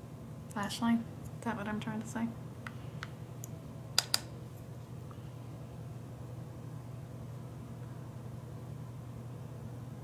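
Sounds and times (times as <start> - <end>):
steady low hum: 0.0 - 10.0
sharp plastic clicks: 3.4 - 4.3.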